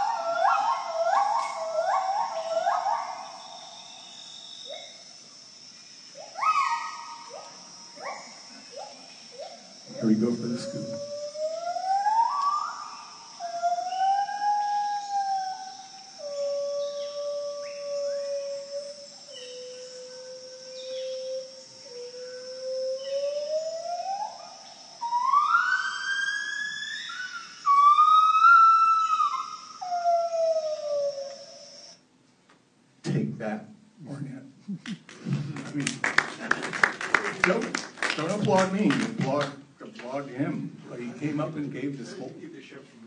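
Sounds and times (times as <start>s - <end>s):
gibbon whooping: 0.0s - 3.8s, 6.2s - 31.5s
cicada drone: 0.0s - 32.2s, 32.8s - 42.8s.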